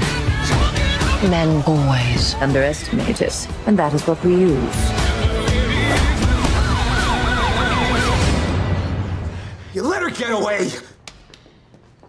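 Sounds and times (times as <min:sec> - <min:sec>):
police siren yelping: 0:06.2 - 0:08.5.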